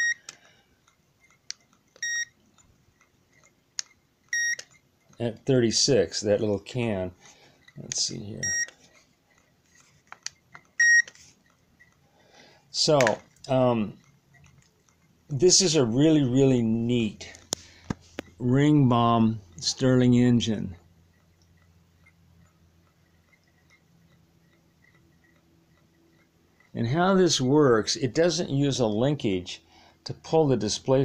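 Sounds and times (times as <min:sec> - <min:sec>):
thermometer high beep: 0:00.0 - 0:00.2, 0:02.0 - 0:02.3, 0:04.3 - 0:04.6, 0:08.4 - 0:08.7, 0:10.8 - 0:11.1
faint light ticks of small engine: 0:21.1 - 0:26.8.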